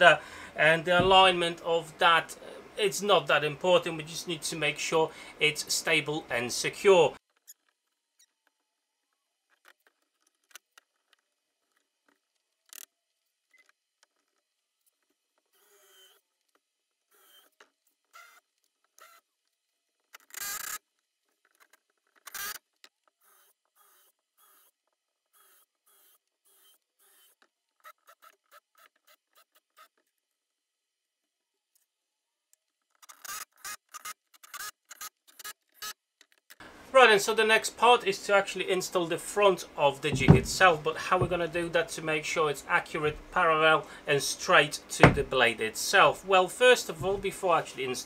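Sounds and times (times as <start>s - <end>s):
loud knocks: 0.9s - 1.3s, 40.1s - 41.4s, 45.0s - 45.3s.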